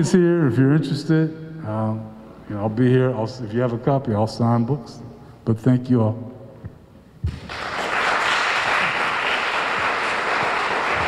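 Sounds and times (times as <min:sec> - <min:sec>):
audience applauding: 0:07.4 - 0:11.0.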